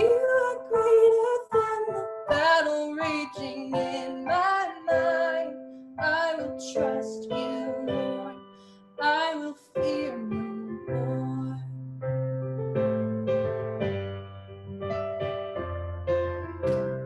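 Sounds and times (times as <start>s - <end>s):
woman singing: 0.0s - 11.8s
keyboard piano chords: 0.0s - 17.0s.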